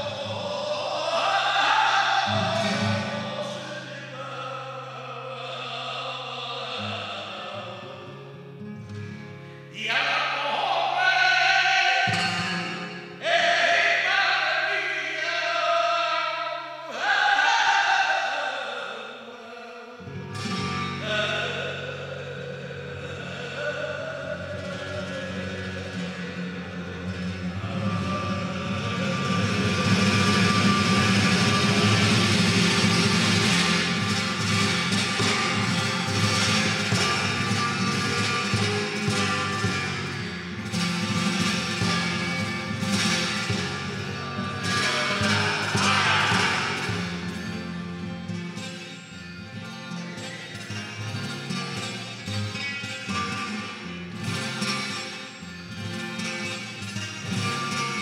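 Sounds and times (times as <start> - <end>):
flamenco guitar: 0.0 - 58.0.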